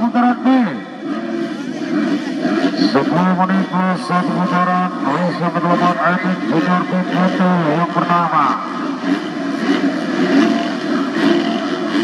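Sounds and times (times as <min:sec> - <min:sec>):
motocross bike engines: 0:00.0 - 0:12.0.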